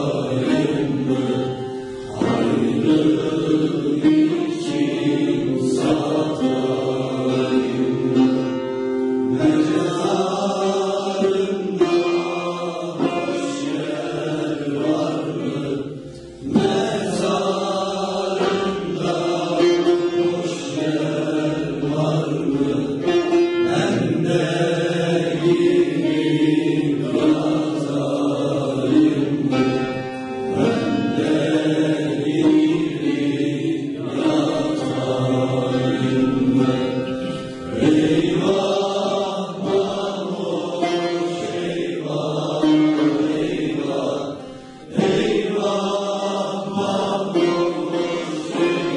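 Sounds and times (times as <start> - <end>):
long-necked lute playing: 0.0 - 48.9
male choir singing: 0.0 - 48.9.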